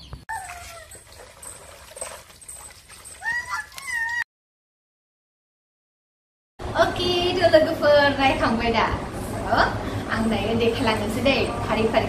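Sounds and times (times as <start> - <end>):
animal whining: 0.3 - 1.0, 3.1 - 4.2.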